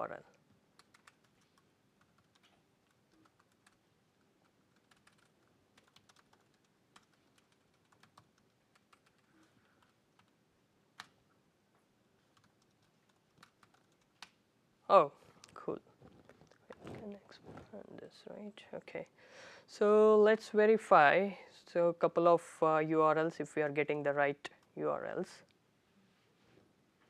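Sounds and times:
laptop keyboard typing: 0.2s - 11.2s, 12.2s - 14.4s.

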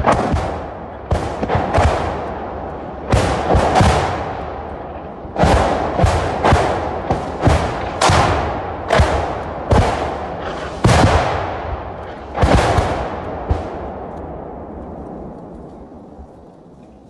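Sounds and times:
rocket explosions with echo: 0.0s - 17.0s.

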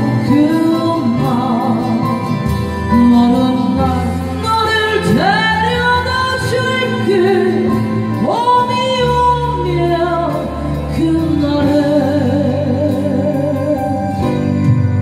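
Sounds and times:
backing track: 0.0s - 15.0s
woman singing a ballad: 0.0s - 15.0s.

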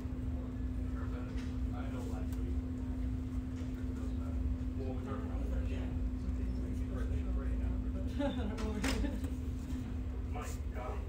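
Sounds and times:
low rumbling hum with droning tone: 0.0s - 11.0s.

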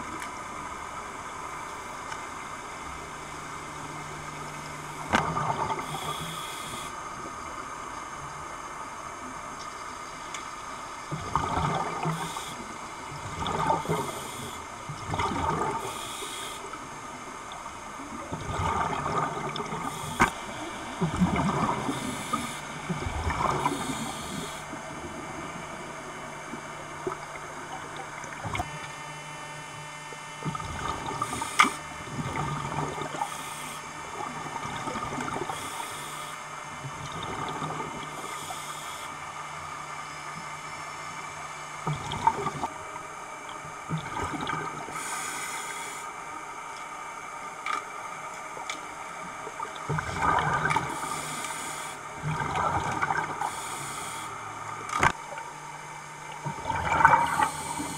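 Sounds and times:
steady low hum: 0.0s - 57.9s
gurgling exhaled bubbles: 4.1s - 6.9s, 11.1s - 16.2s, 18.1s - 28.8s, 30.4s - 36.1s, 36.7s - 38.5s, 41.8s - 42.8s, 43.8s - 45.2s, 49.4s - 55.5s, 56.3s - 57.9s
hissing regulator inhalation: 21.8s - 22.7s, 23.6s - 24.7s, 33.2s - 33.8s, 50.8s - 52.0s, 53.4s - 54.4s, 57.2s - 57.9s.

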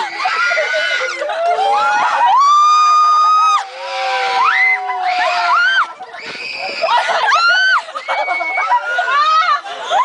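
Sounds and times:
riders screaming: 0.0s - 9.6s.

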